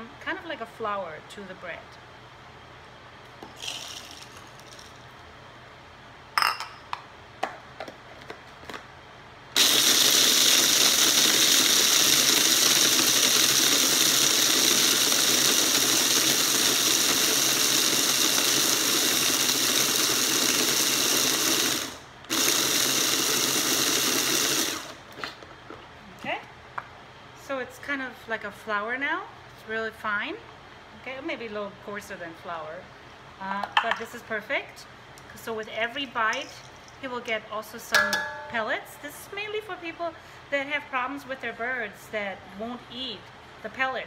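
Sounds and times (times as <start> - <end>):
pellets rattling into bowl: 3.6 - 5.0
food chopper motor whirring: 9.6 - 25.1.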